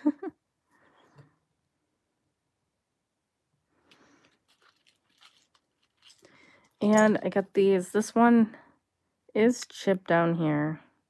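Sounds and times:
jewelry clicks and rustles on cloth: 4.1 - 7.3.

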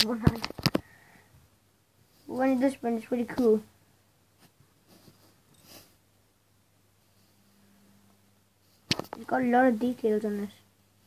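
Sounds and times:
steady low hum: 0.8 - 11.0
faint rustles on carpet: 4.3 - 6.0, 7.0 - 7.6.

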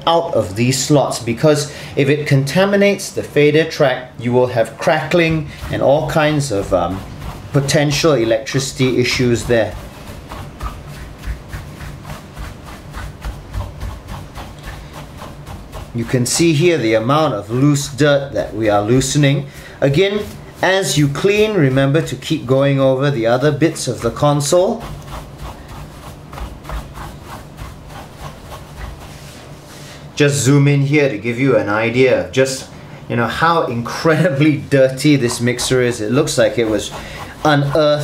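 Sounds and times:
brush sweeping over plastic knobs: 4.5 - 30.1, 33.7 - 38.0
soft low thuds: 9.2 - 16.0.

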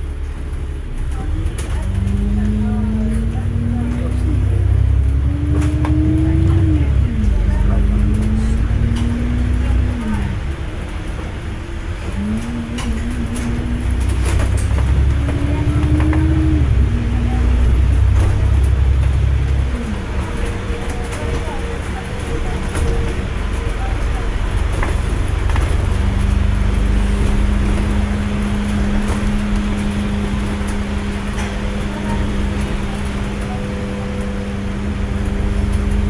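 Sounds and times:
bus engine rumble and whine: 0.0 - 36.0
bus interior rattles: 0.0 - 36.0.

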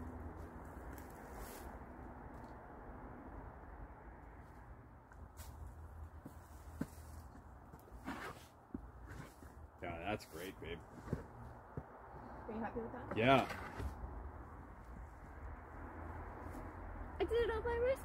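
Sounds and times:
garden fork scraping compost: 13.2 - 14.0.

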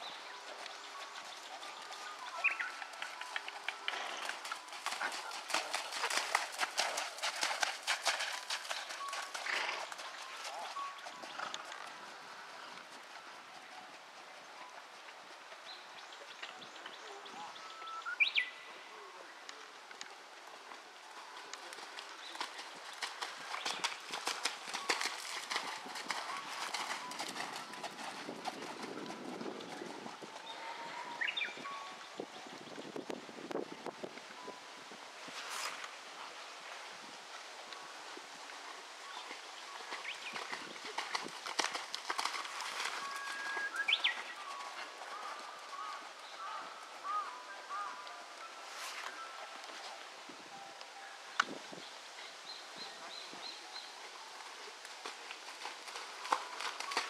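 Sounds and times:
horse hoofbeats on sand: 0.0 - 15.8, 21.7 - 31.7, 39.2 - 48.0, 52.8 - 57.0
whistled bird calls: 2.2 - 3.4, 17.0 - 18.7, 30.6 - 31.9, 42.9 - 48.0.

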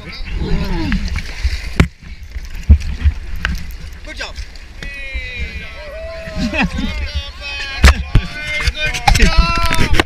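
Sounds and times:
water moving around kayaks: 0.0 - 10.0
wind rumble on camera: 4.9 - 10.0.

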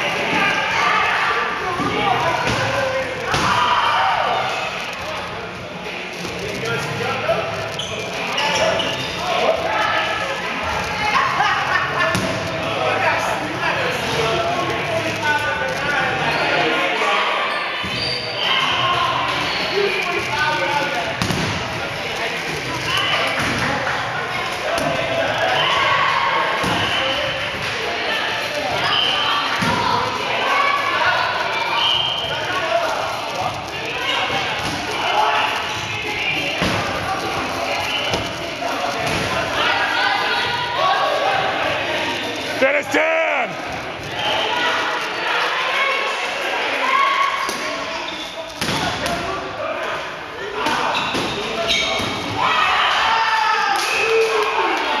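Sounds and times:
players' voices: 0.0 - 55.0.

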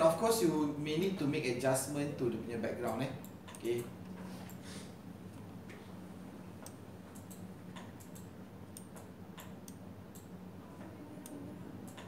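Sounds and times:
steady low hum: 0.0 - 12.0
faint computer clicking: 2.8 - 4.6, 6.6 - 12.0.

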